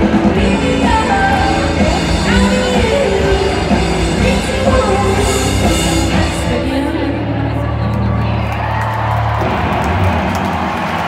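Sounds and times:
live rock band through a pa: 0.0 - 8.2.

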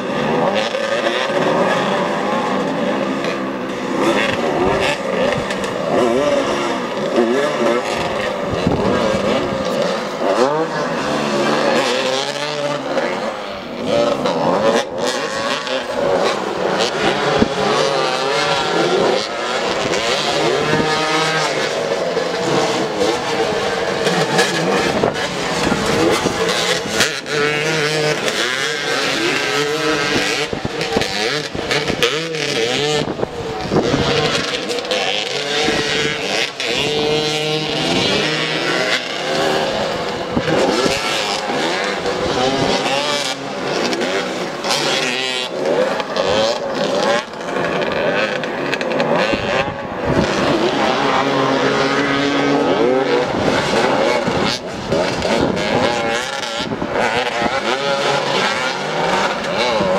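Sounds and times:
motorcycle engines revving: 0.0 - 59.9.

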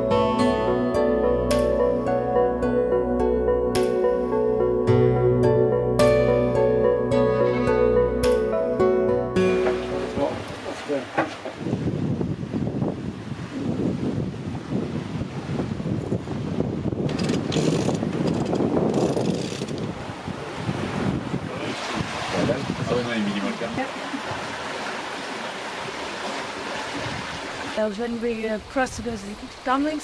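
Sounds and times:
background music: 0.0 - 10.6
water rushing along hull: 7.2 - 30.0
wind buffeting microphone: 10.2 - 24.8, 25.6 - 30.0.

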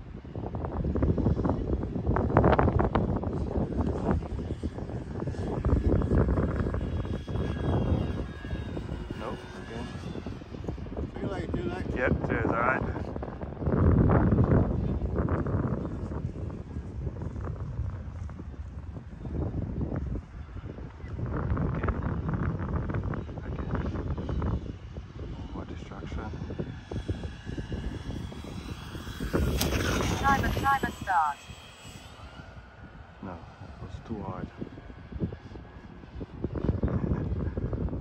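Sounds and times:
wind buffeting microphone: 0.0 - 38.0
model plane motor whine: 0.2 - 38.0.

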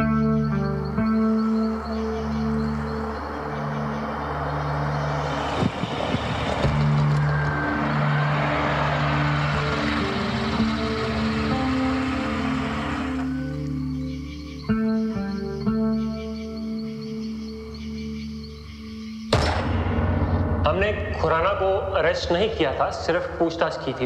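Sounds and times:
music with low sustained notes: 0.0 - 24.0
car driving past: 1.6 - 13.8.

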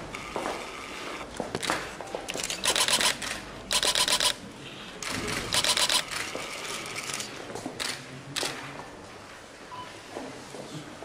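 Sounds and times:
camera shutters clicking: 1.4 - 4.4, 5.0 - 6.3.

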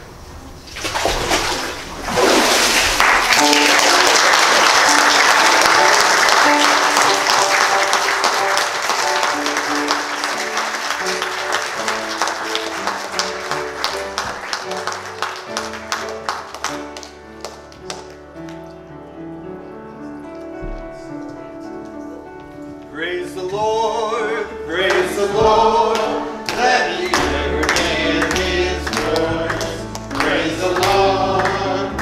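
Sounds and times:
congregation applauding: 2.4 - 18.6, 24.8 - 32.0
instrumental melody: 3.4 - 23.0.

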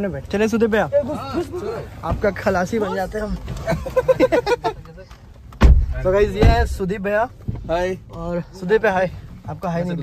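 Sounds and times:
loud low thump: 5.6 - 6.9
man talking: 5.9 - 10.0.

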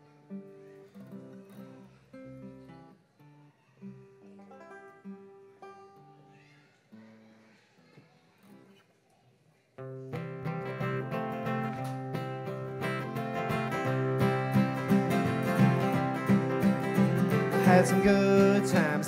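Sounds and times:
acoustic guitar picking: 0.0 - 7.2, 9.8 - 19.0
bluegrass band strumming: 10.1 - 19.0.

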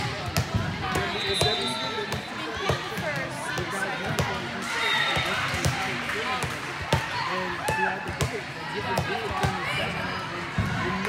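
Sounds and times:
voices calling and chattering: 0.0 - 11.0
volleyballs being hit and bouncing: 0.0 - 11.0.

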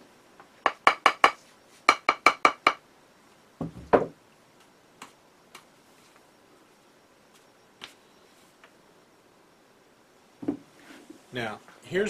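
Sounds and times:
rubber mallet tapping plaster mould: 0.7 - 2.8.

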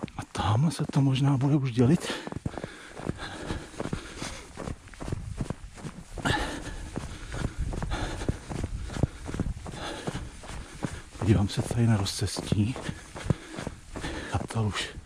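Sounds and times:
running footsteps on snow: 0.0 - 15.0.

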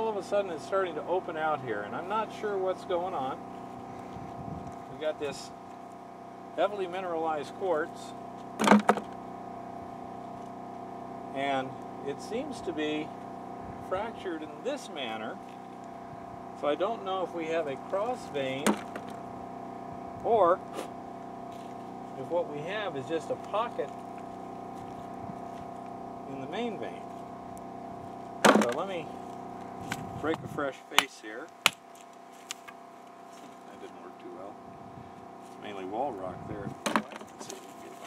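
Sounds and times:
steady hum: 0.0 - 38.0
rock knocking on plastic bucket: 8.6 - 9.2, 18.7 - 19.2, 28.4 - 28.8, 36.8 - 37.5.

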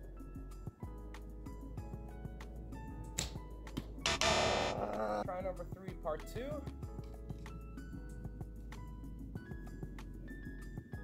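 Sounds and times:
background music: 0.0 - 11.0
bowstring snap: 3.2 - 3.9
loud harsh sound: 4.1 - 4.9.

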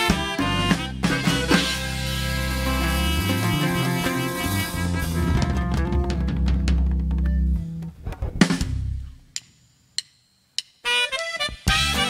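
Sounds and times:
live band with accordion and saxophone: 0.0 - 6.4, 10.9 - 12.0.

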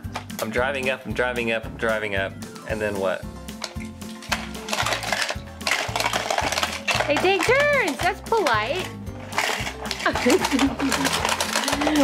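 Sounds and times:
background music with steady beat: 0.0 - 12.0
toy cars clattering on plastic ramp: 4.3 - 12.0.

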